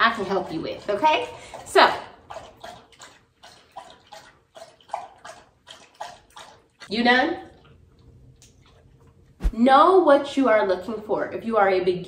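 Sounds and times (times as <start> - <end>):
dog lapping water: 0.0 - 9.3.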